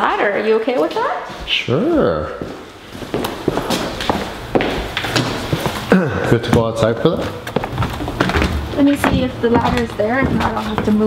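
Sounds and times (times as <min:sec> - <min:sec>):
footsteps on concrete floor: 0:00.4 - 0:01.7, 0:02.3 - 0:11.0.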